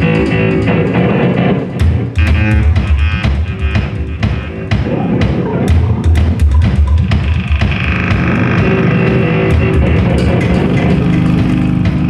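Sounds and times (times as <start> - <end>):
electronic drone tones: 0.0 - 12.0
noise-rock band playing: 0.0 - 12.0.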